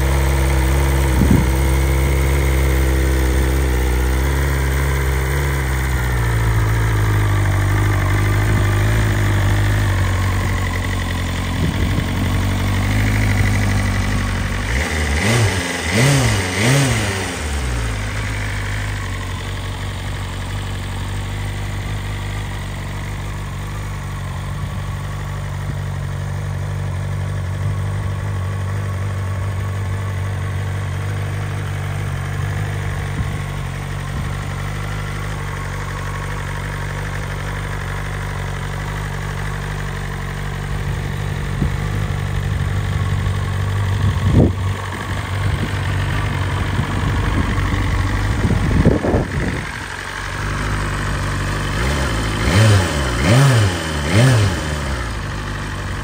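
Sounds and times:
motorcycle engine idling: 0.0s - 56.0s.

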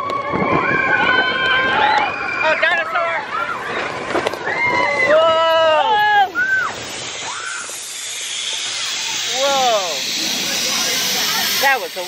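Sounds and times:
riders whooping: 0.0s - 12.0s
roller coaster rushing hiss: 3.6s - 12.0s.

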